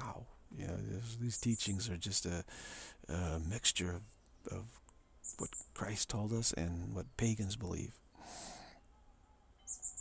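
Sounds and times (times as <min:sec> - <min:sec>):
man breathing: 0:02.5 - 0:03.0, 0:08.2 - 0:08.8.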